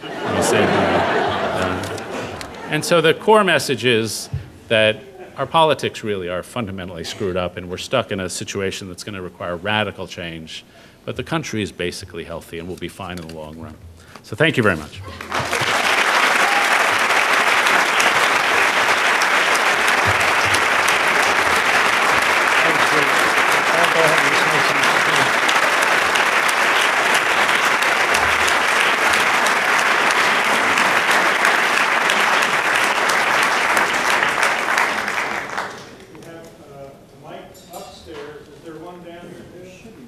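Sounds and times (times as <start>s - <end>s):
large audience applauding: 0.0s - 2.6s, 15.0s - 36.1s.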